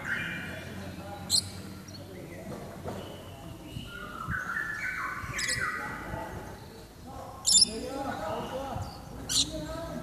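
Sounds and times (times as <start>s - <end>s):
bird whistled notes: 3.8s - 5.8s.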